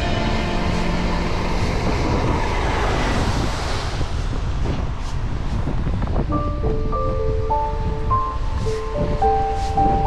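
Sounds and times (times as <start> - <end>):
music of held notes: 0.0 - 1.9, 6.4 - 10.0
wind rumble on microphone: 0.0 - 10.0.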